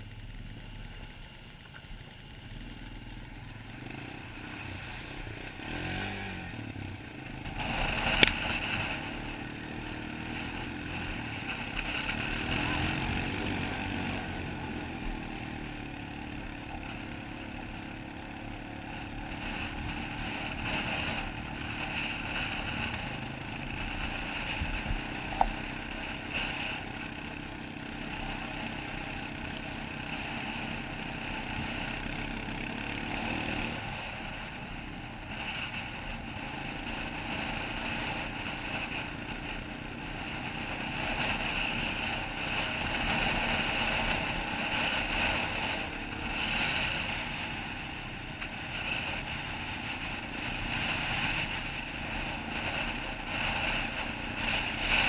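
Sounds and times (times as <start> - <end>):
single-cylinder engine running: 0.0 - 55.0.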